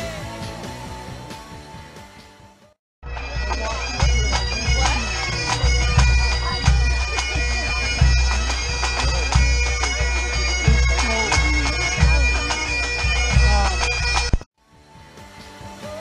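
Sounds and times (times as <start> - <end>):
bass drum beating: 3.0 - 14.4
bagpipes playing a tune: 3.0 - 14.5.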